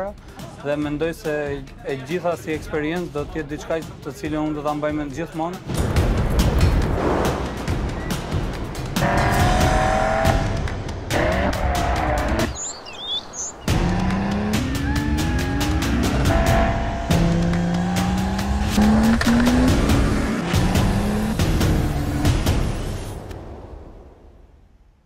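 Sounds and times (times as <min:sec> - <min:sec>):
sports car engines accelerating: 0:09.0 - 0:10.5, 0:11.1 - 0:12.5, 0:13.7 - 0:22.6.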